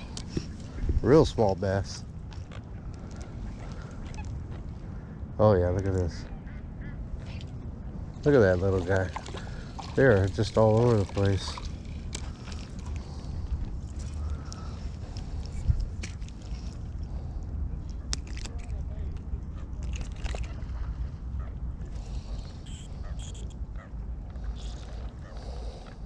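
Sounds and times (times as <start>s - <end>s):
wind rumble on microphone: 0.0s - 10.6s, 11.2s - 26.0s.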